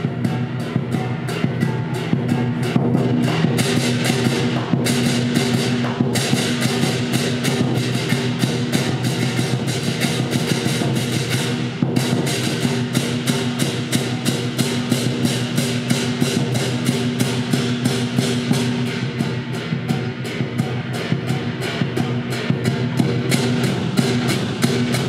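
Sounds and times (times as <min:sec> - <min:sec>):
hand cymbals clashing: 0:00.0 - 0:25.0
large drum beating: 0:00.0 - 0:25.0.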